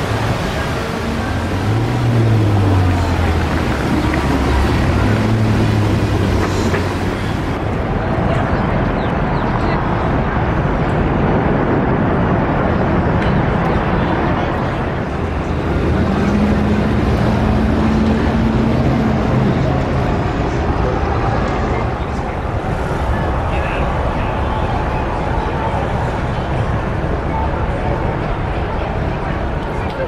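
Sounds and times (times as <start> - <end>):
city street traffic: 0.0 - 30.0
vehicle engine hum: 0.0 - 30.0
voices of passers-by: 0.0 - 30.0.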